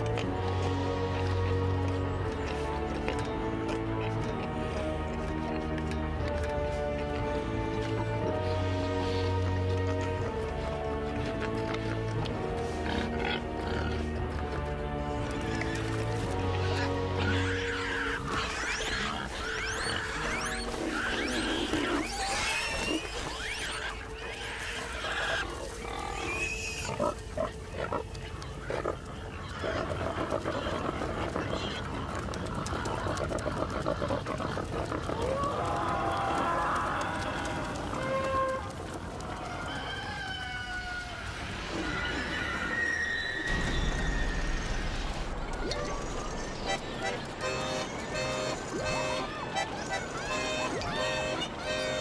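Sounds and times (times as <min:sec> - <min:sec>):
pigs grunting and squealing: 0:11.4 - 0:14.5, 0:15.3 - 0:44.8, 0:45.5 - 0:52.0.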